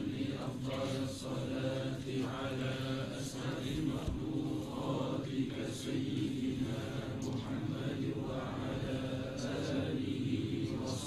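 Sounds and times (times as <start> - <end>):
group chanting devotional litany: 0.0 - 11.0.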